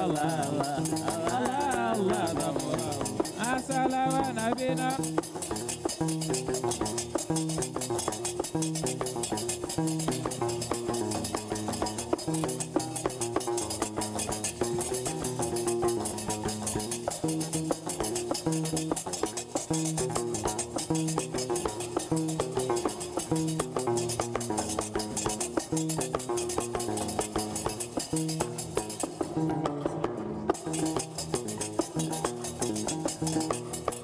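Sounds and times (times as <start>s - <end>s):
person singing: 0.0s - 5.1s
metal castanets clacking: 0.0s - 34.0s
plucked bass lute: 0.0s - 34.0s.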